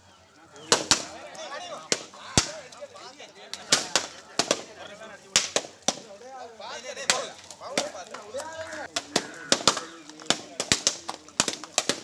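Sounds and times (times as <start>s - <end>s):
coconuts smashed on pavement: 0.7s - 2.7s, 3.5s - 6.2s, 7.0s - 12.0s.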